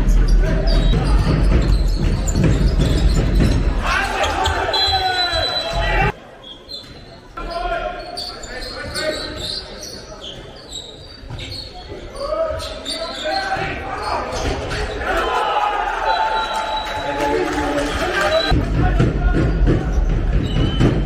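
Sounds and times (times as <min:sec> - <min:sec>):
players shouting in echoing hall: 0:00.0 - 0:06.4, 0:11.7 - 0:21.0
crowd noise: 0:00.0 - 0:21.0
ball bouncing on hall floor: 0:00.4 - 0:04.6.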